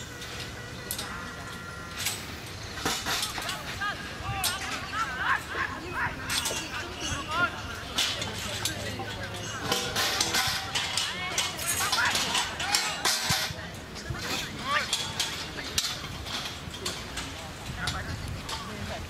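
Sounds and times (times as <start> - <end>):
voices calling and shouting: 0.0 - 19.0.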